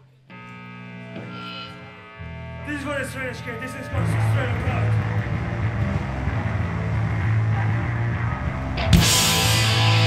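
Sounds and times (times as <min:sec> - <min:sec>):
amplifier hum: 0:00.1 - 0:03.3.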